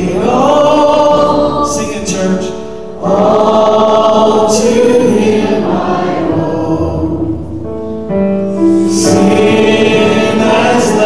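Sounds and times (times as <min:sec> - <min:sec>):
man singing: 0:00.0 - 0:03.2
congregation singing a hymn: 0:00.0 - 0:11.0
digital piano accompaniment: 0:00.0 - 0:11.0.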